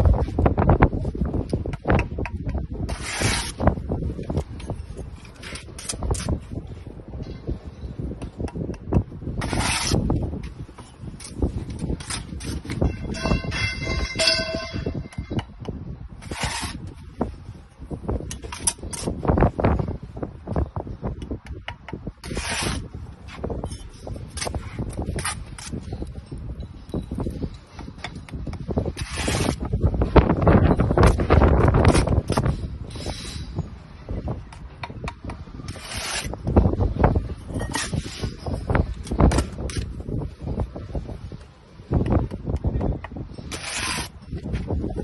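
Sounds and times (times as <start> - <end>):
trowel scraping brick: 2.8 - 6.7, 9.3 - 15.4, 16.2 - 17.0, 18.3 - 19.2, 22.2 - 26.1, 27.3 - 29.8, 30.8 - 33.6, 35.6 - 40.0, 42.6 - 45.0
trowel and bricks knocking: 8.1 - 16.9, 34.5 - 36.4, 37.2 - 39.9, 42.0 - 44.9
scraping rasp: 43.4 - 44.4.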